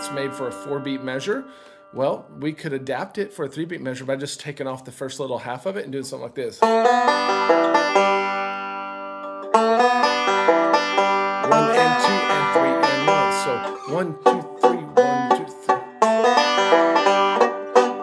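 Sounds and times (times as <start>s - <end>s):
banjo picking: 0.0s - 3.0s, 6.4s - 18.0s.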